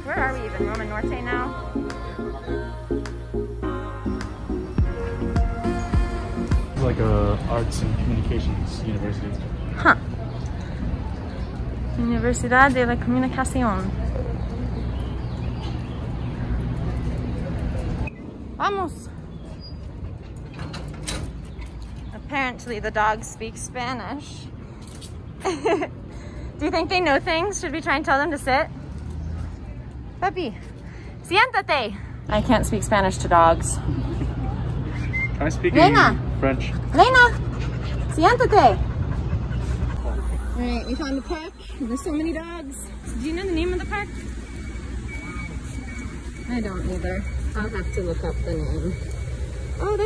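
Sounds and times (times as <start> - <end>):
city traffic rumble: 0.0 - 50.0
metal chain leash rattling: 24.7 - 25.2
low outdoor rumble: 36.2 - 50.0.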